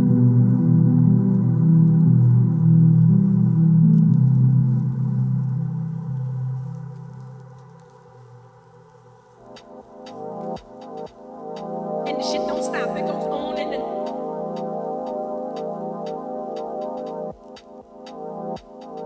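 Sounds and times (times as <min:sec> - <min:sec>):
sustained ambient synth chord: 0:09.4 - 0:19.0.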